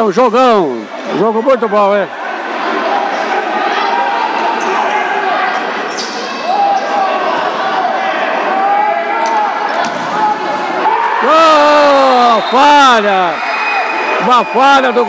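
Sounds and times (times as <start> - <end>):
distant people shouting: 2.4 - 15.0.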